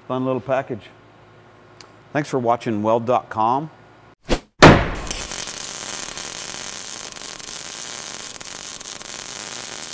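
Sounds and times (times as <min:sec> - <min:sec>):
electric welding arc crackling: 0:04.9 - 0:09.9.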